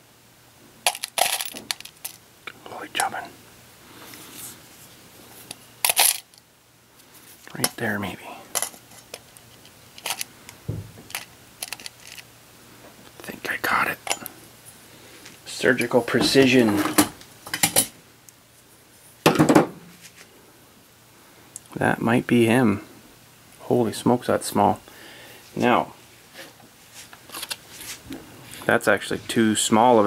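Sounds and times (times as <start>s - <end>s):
screws clinking in metal tin: 0.9s - 2.2s, 5.8s - 6.3s.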